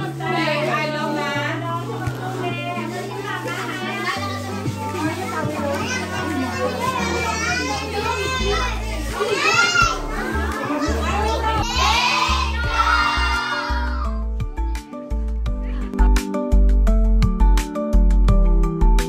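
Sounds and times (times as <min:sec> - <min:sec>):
children chattering and shouting: 0:00.0 - 0:16.1
music with bass line: 0:00.0 - 0:19.0.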